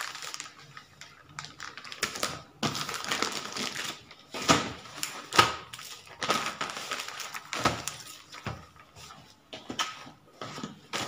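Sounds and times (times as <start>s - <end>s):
plastic bags rustling and crinkling: 0.0s - 11.0s.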